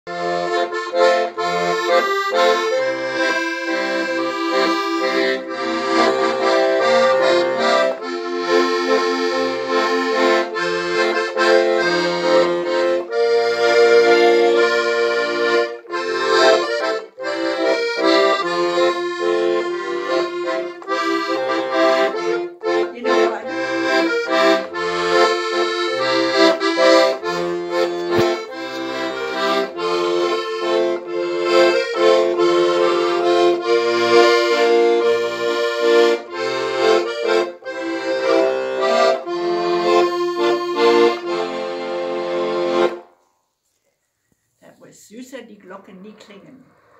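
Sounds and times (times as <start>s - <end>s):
piano accordion playing: 0.1s - 43.2s.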